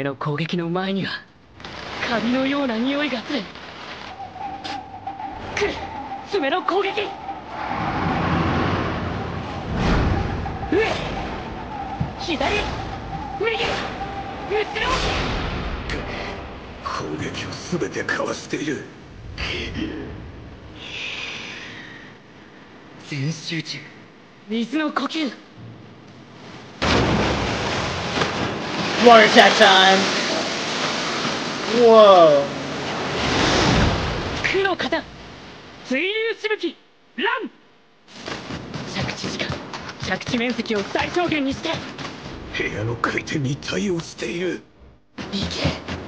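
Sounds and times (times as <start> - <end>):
low rumble: 1.3 - 23.0
rushing water sound effect: 26.9 - 35.7.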